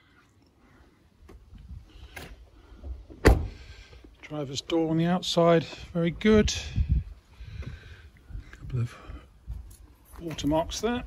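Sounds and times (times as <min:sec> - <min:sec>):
car door shutting thud: 0:03.1 - 0:03.6.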